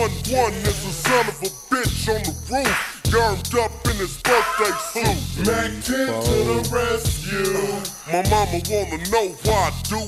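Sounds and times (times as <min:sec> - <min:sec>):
slowed rap over heavy bass beat: 0:00.0 - 0:10.0.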